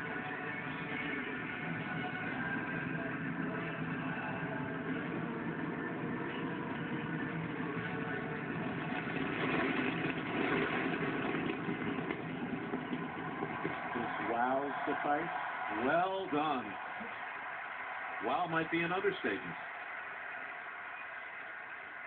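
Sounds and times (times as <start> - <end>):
television sound through speaker: 0.0 - 22.0.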